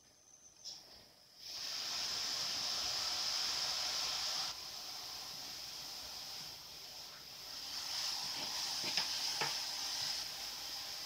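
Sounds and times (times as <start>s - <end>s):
steady high hiss: 0.0s - 11.0s.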